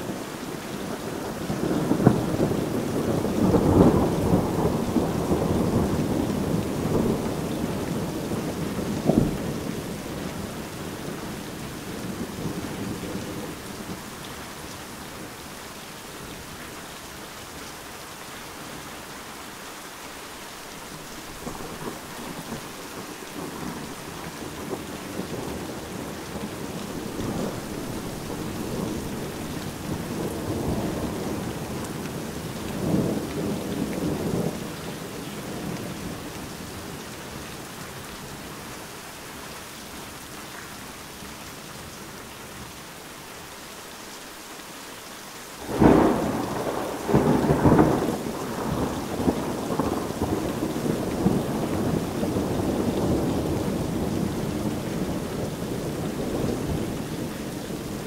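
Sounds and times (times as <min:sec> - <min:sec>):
heavy rain: 0:00.0 - 0:58.0
loud thunderclap: 0:45.6 - 0:55.3
rolling thunder rumble: 0:45.6 - 0:58.0.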